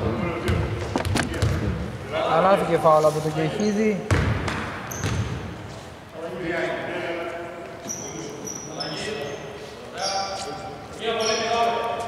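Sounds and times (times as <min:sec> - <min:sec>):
basketball bouncing on hardwood: 0:04.1 - 0:05.4.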